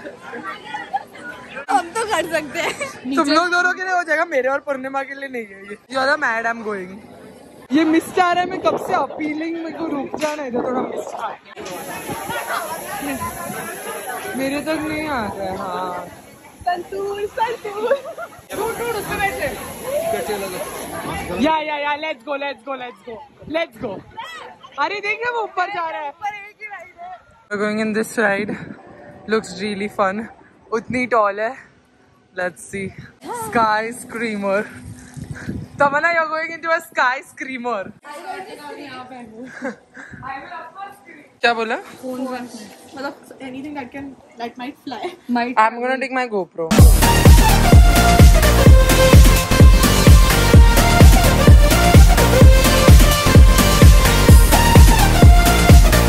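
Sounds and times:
people talking quietly: 0:00.0 - 0:27.5
people chattering: 0:00.0 - 0:32.4, 0:38.0 - 0:56.0
misting system spraying hiss: 0:11.6 - 0:21.4
woman talking: 0:32.4 - 0:34.8, 0:35.8 - 0:46.8.

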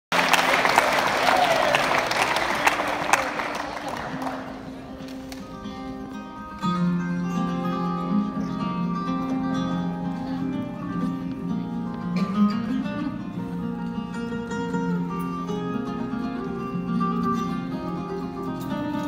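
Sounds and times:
audience applause: 0:00.1 - 0:05.4
acoustic guitars picking: 0:04.1 - 0:19.0.

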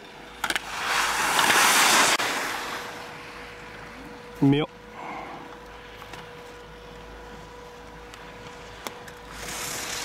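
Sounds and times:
skis scraping over snow: 0:00.4 - 0:04.0, 0:08.3 - 0:10.0.

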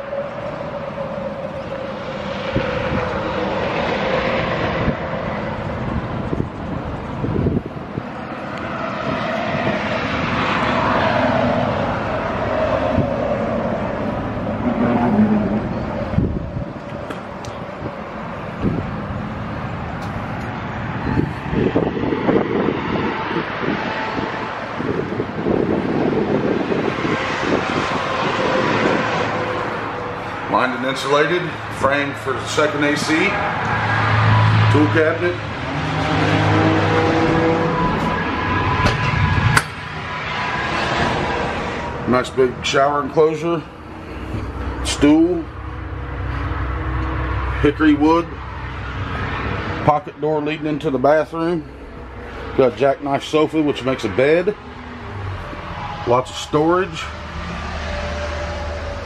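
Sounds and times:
vehicles passing: 0:00.0 - 0:59.0.

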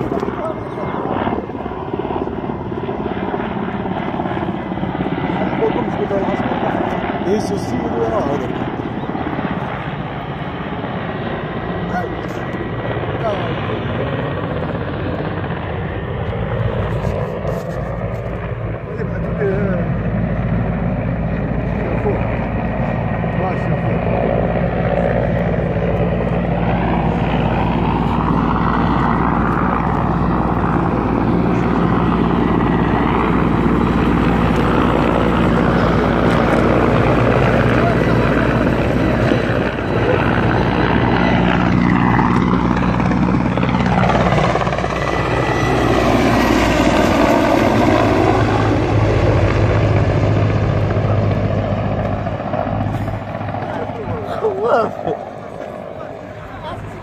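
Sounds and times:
helicopter rotor overhead: 0:00.0 - 0:57.0.

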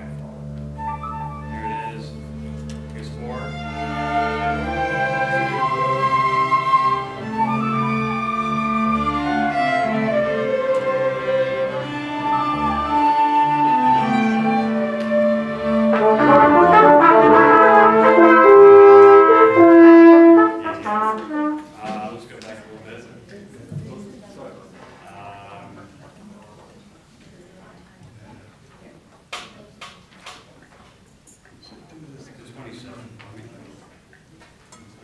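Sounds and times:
brass and woodwinds playing chords: 0:00.0 - 0:21.8.

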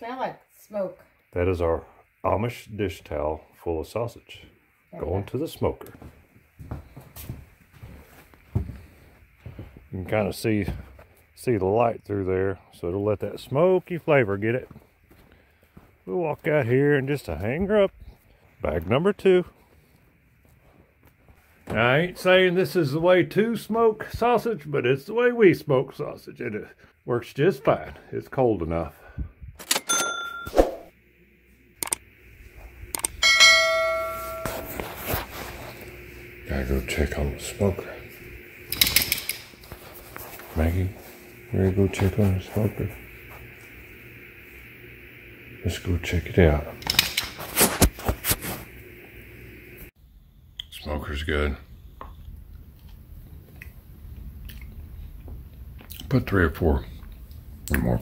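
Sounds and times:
footsteps on wooden floor: 0:05.9 - 0:09.9, 0:10.6 - 0:11.2, 0:14.6 - 0:16.0
bright bell ding: 0:29.8 - 0:30.6, 0:33.2 - 0:34.8.

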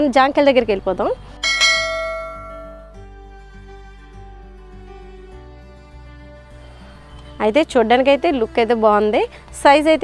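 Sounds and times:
bell-like chime: 0:01.4 - 0:03.0.

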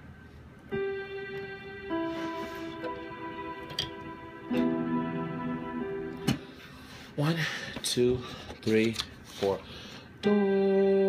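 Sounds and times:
keyboard playing held chord: 0:00.7 - 0:06.8, 0:10.2 - 0:11.0.

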